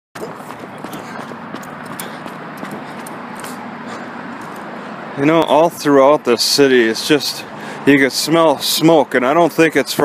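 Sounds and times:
outdoor street noise: 0.2s - 10.0s.

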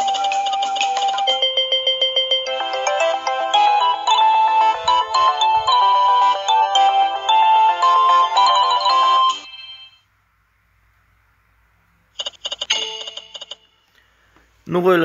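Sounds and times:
electronic chime win jingle: 0.0s - 10.0s.

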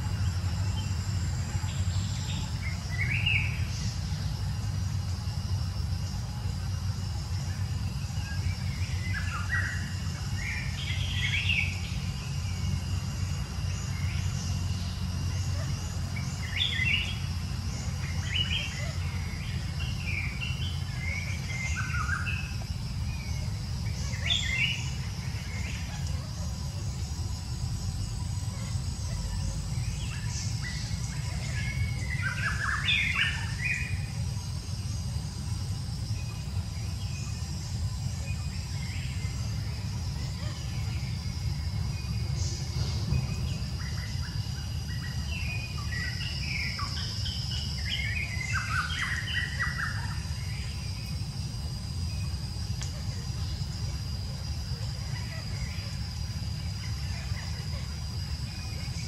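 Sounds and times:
birds chirping: 0.0s - 59.0s
constant low rumble: 0.0s - 59.0s.

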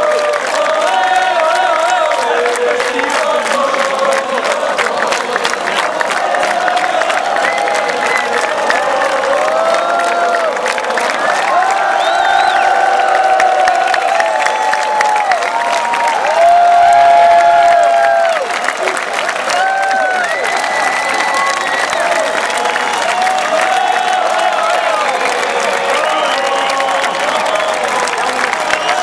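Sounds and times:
crowd cheering and applauding: 0.0s - 29.0s
people yelling cheers: 0.0s - 29.0s.

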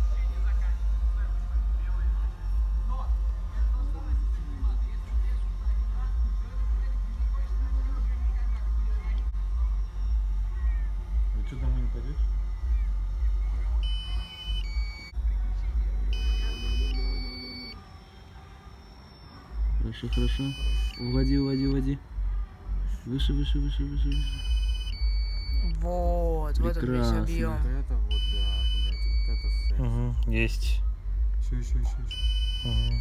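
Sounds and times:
steady low rumble: 0.0s - 17.8s, 19.5s - 33.0s
short electronic beeps: 13.8s - 15.2s, 16.1s - 17.8s, 19.1s - 21.9s, 23.2s - 25.8s, 28.1s - 29.8s, 32.1s - 33.0s.

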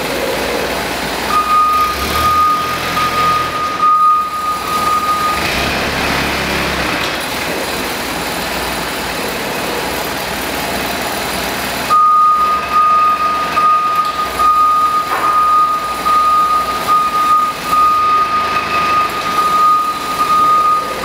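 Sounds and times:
diesel forklift engine running: 0.0s - 21.0s
reversing alarm beep: 1.3s - 5.8s, 11.9s - 21.0s.

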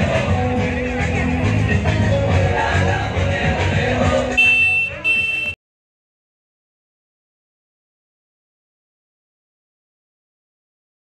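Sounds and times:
loud music from speakers: 0.0s - 5.5s.

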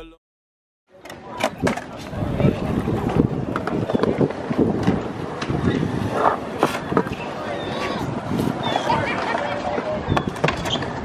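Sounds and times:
chatter of onlookers: 0.9s - 11.0s
skateboards rolling on concrete: 0.9s - 11.0s
skateboard clacks and knocks: 1.0s - 8.0s, 8.6s - 11.0s.

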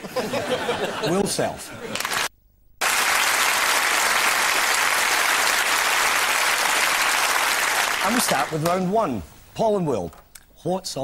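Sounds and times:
studio audience applauding: 1.9s - 8.9s.

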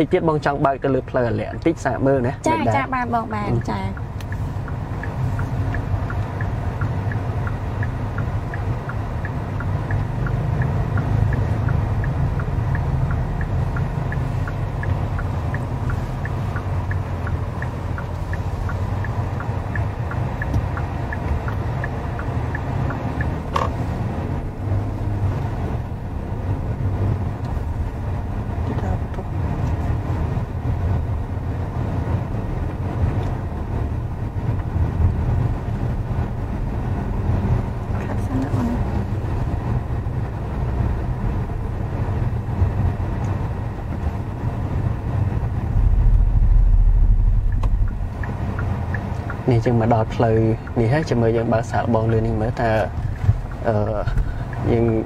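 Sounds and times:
car cabin road rumble: 0.0s - 55.0s.

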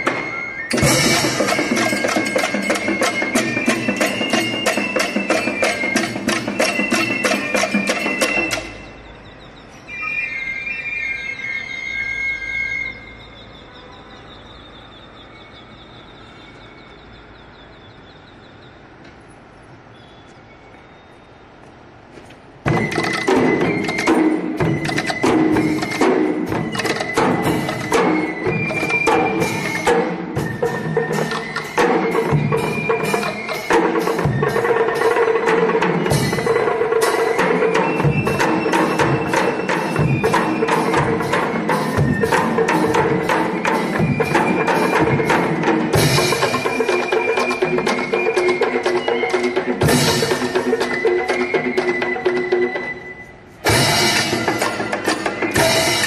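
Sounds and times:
drums and hand cymbals: 0.0s - 9.2s, 22.5s - 56.0s
high melody line: 0.0s - 13.6s, 22.7s - 56.0s.

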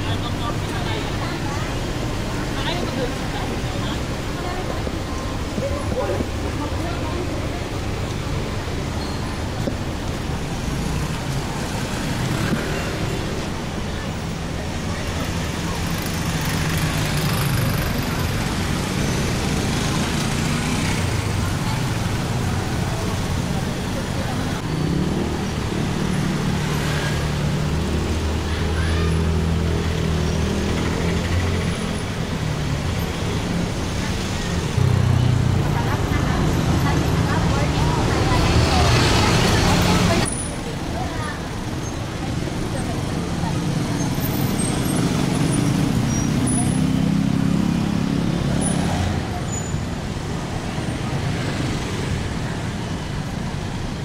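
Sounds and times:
cars passing: 0.0s - 54.0s
motorcycles passing: 0.0s - 54.0s.

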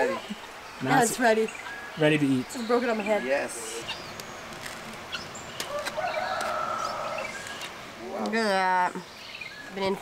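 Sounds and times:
small birds chirping: 0.0s - 10.0s
rooster crowing: 5.7s - 7.4s.

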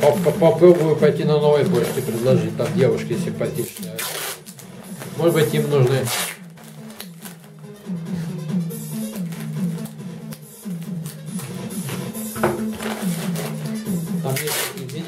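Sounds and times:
packing tape pulled off roll: 0.0s - 2.9s, 3.5s - 7.6s, 9.0s - 12.0s, 12.6s - 15.0s
music with repeating bass line: 0.0s - 3.7s, 4.4s - 14.3s.

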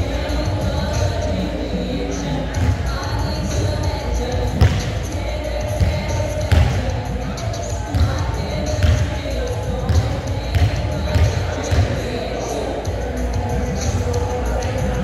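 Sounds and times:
indistinct voices: 0.0s - 15.0s
basketball bouncing: 5.8s - 6.8s, 8.8s - 9.1s, 9.9s - 12.0s.

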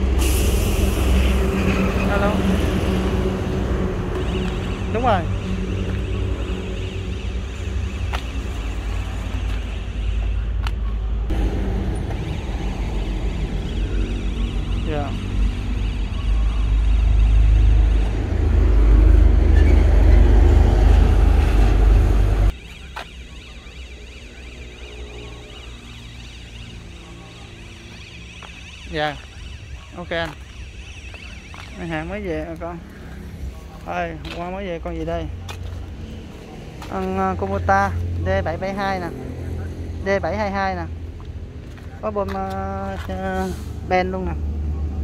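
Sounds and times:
engine rumbling: 0.0s - 22.6s.

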